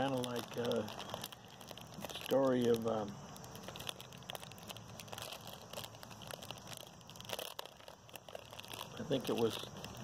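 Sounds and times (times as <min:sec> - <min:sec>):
crinkling and crackling: 0:00.0 - 0:10.0.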